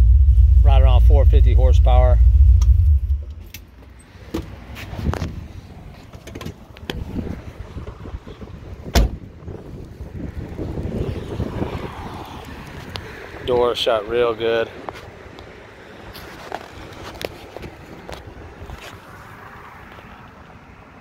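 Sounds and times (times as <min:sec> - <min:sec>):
car engine rumbling: 0:00.0 - 0:21.0
car door shutting: 0:08.8 - 0:09.3.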